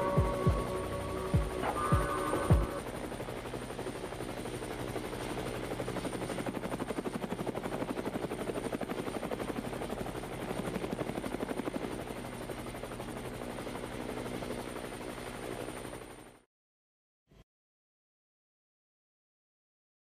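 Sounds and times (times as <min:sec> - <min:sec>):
steady low drone: 0:00.0 - 0:03.2
rapid chopping pulse: 0:00.2 - 0:02.8.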